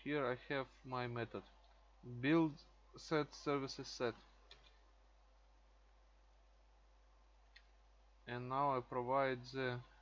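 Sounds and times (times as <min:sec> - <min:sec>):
computer mouse click: 0:04.4 - 0:04.8, 0:07.4 - 0:07.8.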